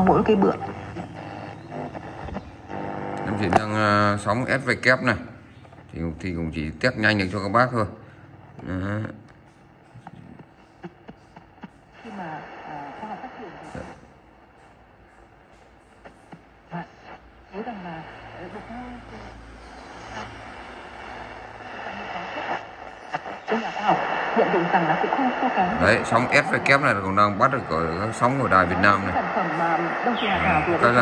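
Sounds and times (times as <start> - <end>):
radio broadcast voice: 0.0 - 7.9, 16.7 - 20.4, 21.1 - 31.0
radio hiss: 0.0 - 9.1, 10.0 - 14.6, 16.0 - 31.0.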